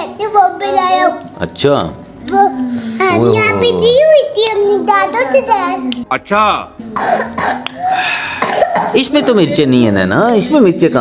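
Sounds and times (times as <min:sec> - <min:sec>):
child clearing throat: 0:06.9 - 0:09.7
child coughing: 0:07.0 - 0:09.8.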